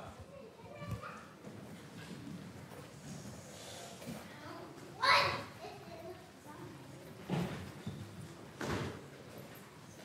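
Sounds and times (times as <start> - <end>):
children's voices in a large room: 0.0 - 10.0.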